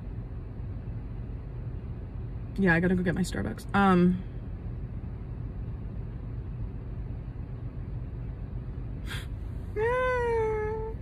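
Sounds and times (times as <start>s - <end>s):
car interior hum: 0.0s - 11.0s.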